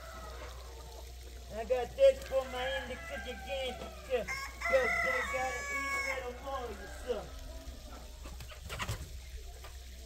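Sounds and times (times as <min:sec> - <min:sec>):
chickens clucking: 0:00.0 - 0:01.7, 0:02.3 - 0:10.0
rooster crowing: 0:02.3 - 0:07.4.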